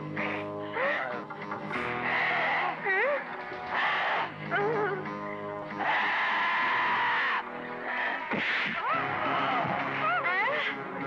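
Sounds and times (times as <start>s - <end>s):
film background music: 0.0s - 11.0s
wavering vocal cries: 2.0s - 5.2s, 5.8s - 11.0s.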